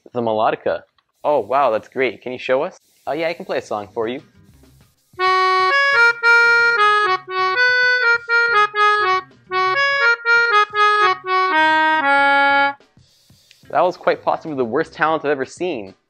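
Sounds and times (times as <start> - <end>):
melodica playing a tune: 5.2 - 12.8.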